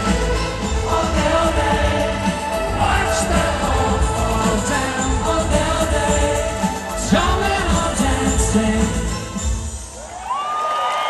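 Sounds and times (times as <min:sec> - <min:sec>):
synth-pop song: 0:00.0 - 0:10.2
crowd cheering: 0:09.7 - 0:11.0.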